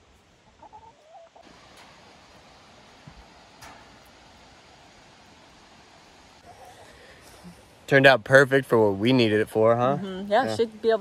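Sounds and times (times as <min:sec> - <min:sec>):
chickens clucking: 0:00.1 - 0:05.0, 0:06.0 - 0:07.6
chicken calls: 0:00.4 - 0:04.2, 0:06.4 - 0:07.4.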